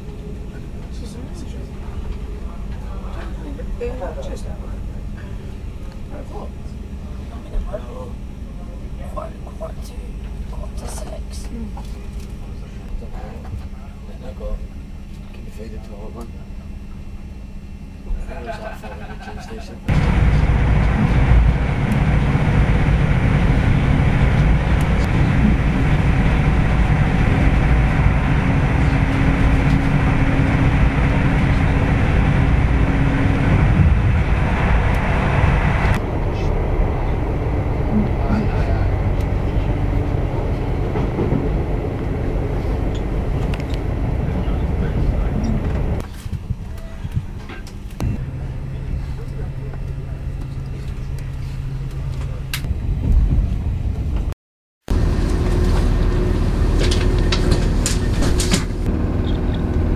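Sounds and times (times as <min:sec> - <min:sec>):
steady low hum: 0:00.0 - 0:59.9
train wheels rumbling: 0:19.9 - 0:46.2.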